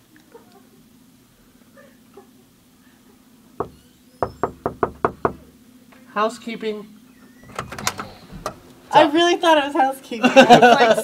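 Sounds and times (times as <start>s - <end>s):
knocking on a door: 3.6s - 5.5s.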